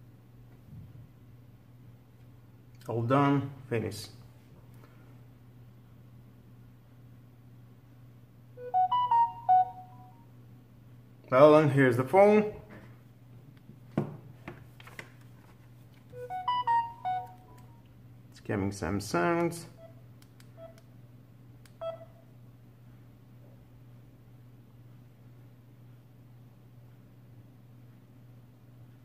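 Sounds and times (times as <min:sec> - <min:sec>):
phone electronic chime: 0:08.6 - 0:10.2, 0:16.2 - 0:17.6.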